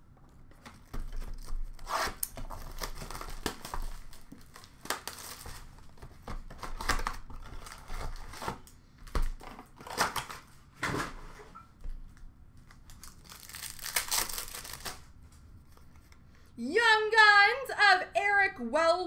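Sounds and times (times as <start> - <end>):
card pack wrappers tearing: 0.7 - 8.7, 9.3 - 10.5, 12.7 - 15.1.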